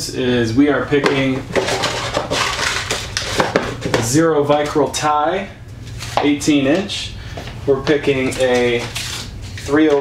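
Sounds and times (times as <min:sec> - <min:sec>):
packets rattling and rustling: 0:01.4 - 0:04.1.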